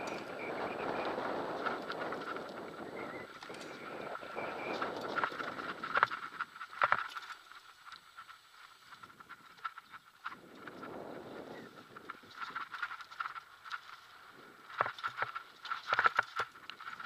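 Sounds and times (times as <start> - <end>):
bike rattling over bumps: 0.0 - 17.0
tyre and wind rush: 0.0 - 17.0.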